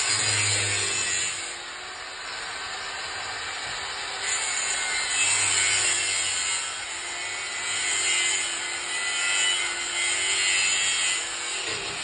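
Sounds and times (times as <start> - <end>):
hand tool scratchy hiss: 0.0 - 12.0.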